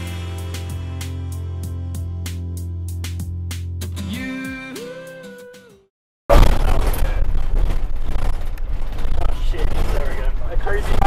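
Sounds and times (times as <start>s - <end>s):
bus engine and road noise: 6.6s - 11.0s.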